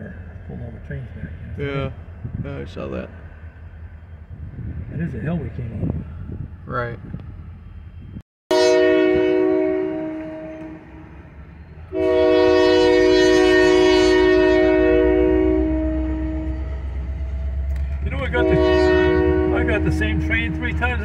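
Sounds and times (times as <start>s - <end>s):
locomotive engine rumble: 0.0s - 21.0s
locomotive air horn blasts: 8.5s - 11.2s, 11.9s - 21.0s.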